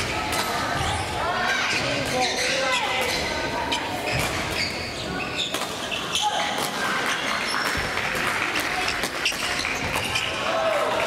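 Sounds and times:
shoes squeaking on court floor: 0.8s - 7.8s, 8.6s - 10.5s.

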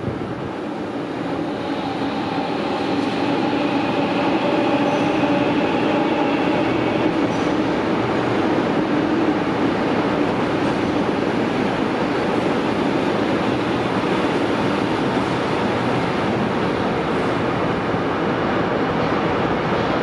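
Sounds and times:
electric train running past: 0.0s - 20.0s
train whine: 0.0s - 20.0s.

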